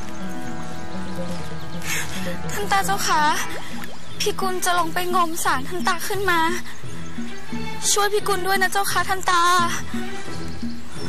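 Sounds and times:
background music with low line: 0.0 - 11.0
woman speaking: 2.6 - 3.5.

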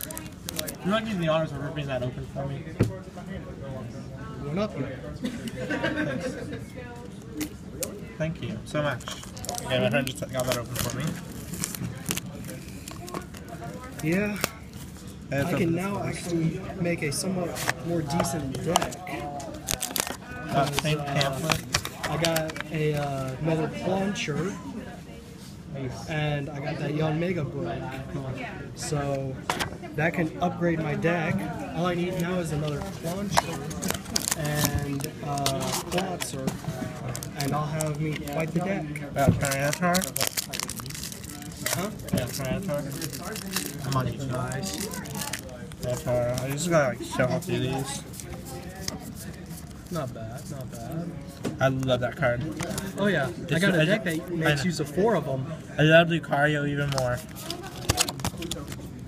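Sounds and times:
plastic packaging crinkling: 0.0 - 0.9, 9.0 - 14.5, 19.6 - 22.7, 32.8 - 38.7, 39.4 - 46.7, 56.9 - 58.9
background chatter: 0.0 - 59.0.

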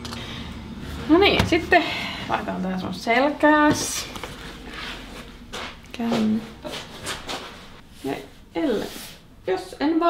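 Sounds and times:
fabric rustling: 3.7 - 9.2.

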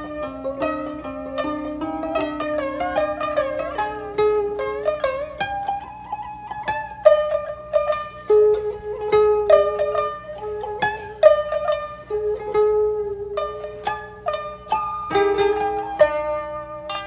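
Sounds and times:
plucked string instruments: 0.0 - 17.0.

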